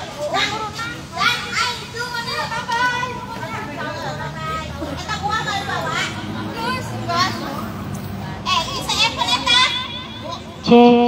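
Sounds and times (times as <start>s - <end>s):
background murmur: 0.0s - 11.0s
high-pitched voices chattering: 0.0s - 11.0s.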